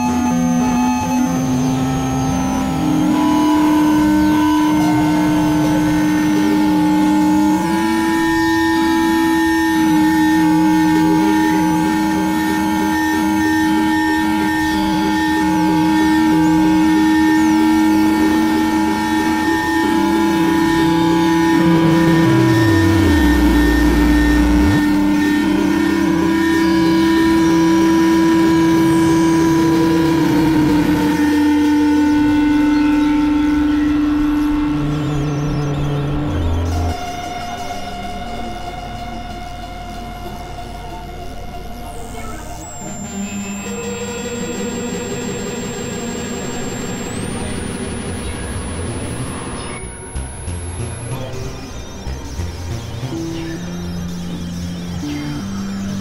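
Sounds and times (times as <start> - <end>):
electronic drone music: 0.0 - 56.0
pitch sliding into deep low tone: 18.2 - 36.9.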